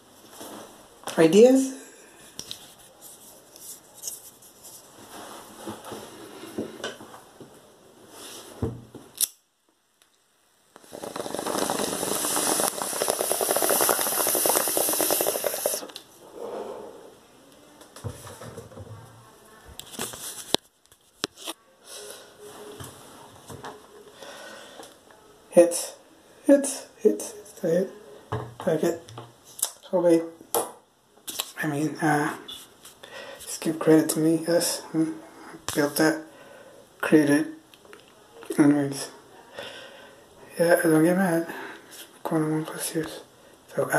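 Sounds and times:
bong rushing hiss and crackle: 0:10.7 - 0:16.6.

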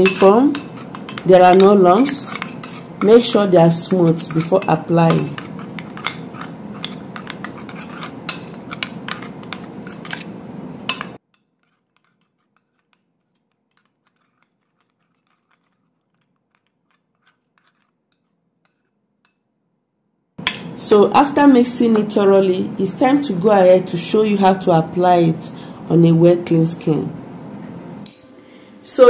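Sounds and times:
metal spoon scraping glass bowl: 0:00.0 - 0:19.0.

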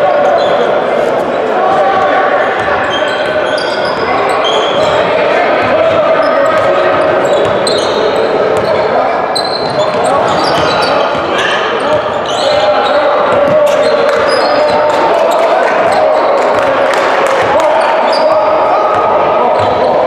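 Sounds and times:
indistinct shouting and chatter: 0:00.0 - 0:20.0
sneaker squeaks: 0:00.2 - 0:01.2, 0:02.4 - 0:15.0, 0:17.9 - 0:20.0.

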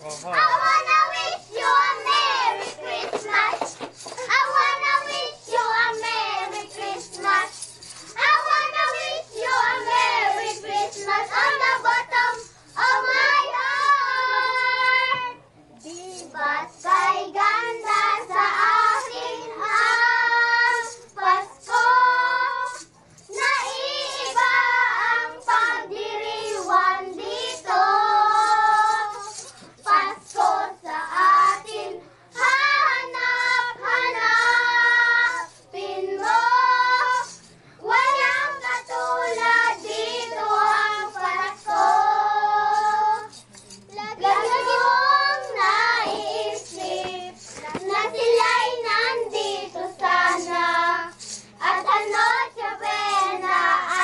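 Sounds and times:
children singing carol: 0:00.0 - 0:54.0.

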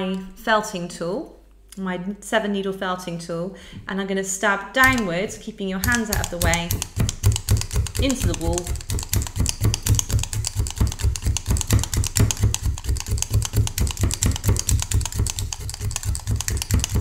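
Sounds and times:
felting needle stabbing into wool: 0:04.8 - 0:05.2, 0:05.8 - 0:17.0.

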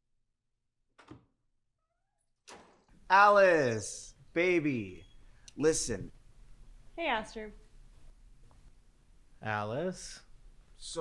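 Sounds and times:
door squeak: 0:05.0 - 0:05.3.

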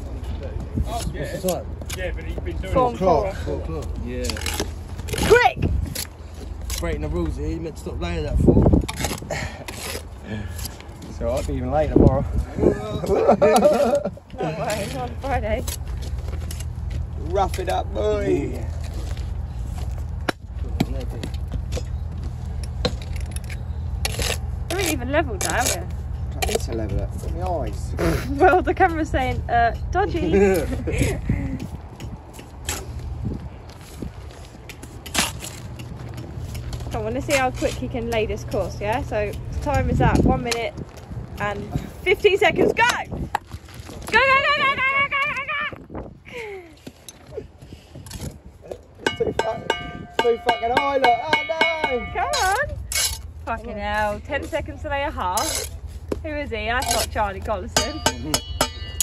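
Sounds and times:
steady low rumble: 0:00.0 - 0:59.0
trowel clinking on concrete blocks: 0:49.0 - 0:53.3, 0:56.8 - 0:59.0.

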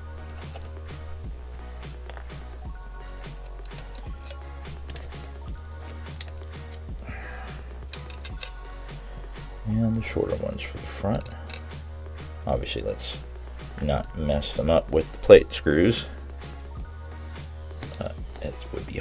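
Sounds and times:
music with repeating bass line: 0:00.0 - 0:19.0
screws clinking in metal dish: 0:02.0 - 0:07.0, 0:07.7 - 0:08.7, 0:11.1 - 0:11.8.

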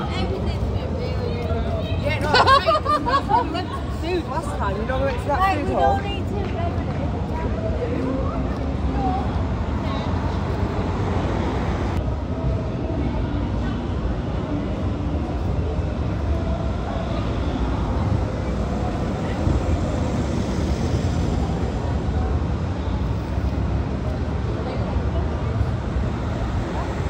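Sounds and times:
people talking: 0:00.0 - 0:11.0, 0:12.8 - 0:27.0
car traffic rumble: 0:00.0 - 0:27.0.

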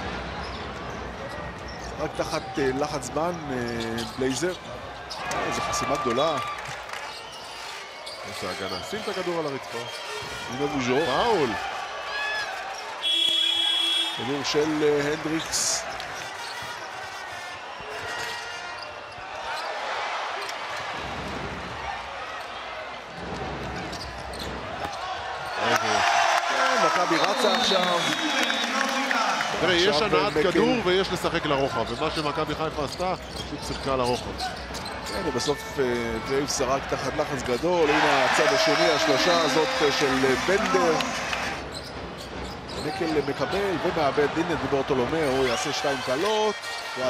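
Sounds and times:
arena crowd hubbub: 0:00.0 - 0:47.0.

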